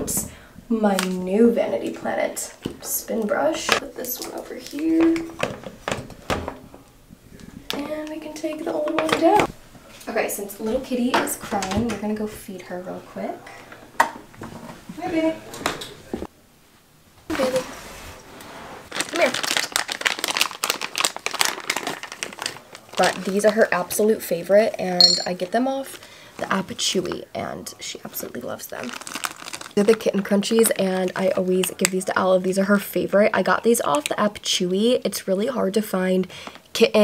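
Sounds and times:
plastic pouch crinkling: 18.9s - 23.8s, 28.7s - 30.3s.

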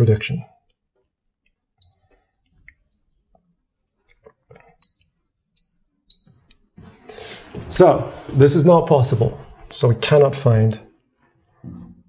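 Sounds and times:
marker squeaking on glass: 1.8s - 6.6s.

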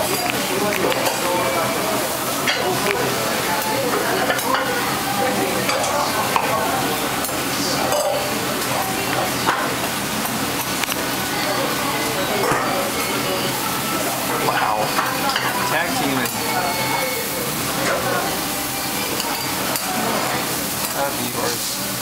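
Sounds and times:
food sizzling on griddle: 0.0s - 22.0s.

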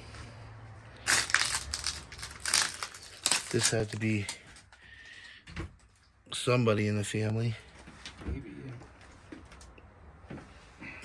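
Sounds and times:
debris crunching: 1.0s - 4.6s.

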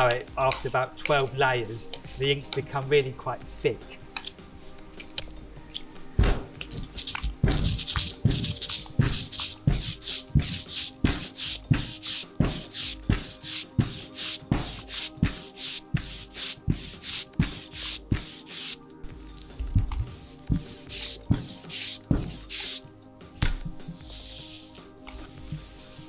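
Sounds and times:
ink roller rolling through ink: 6.8s - 18.8s, 20.0s - 22.8s, 23.7s - 26.0s.

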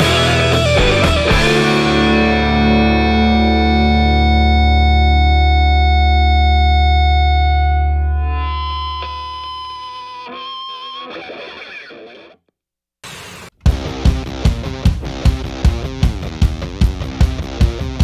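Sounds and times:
distorted electric guitar rock music: 0.0s - 12.4s, 13.1s - 18.0s.

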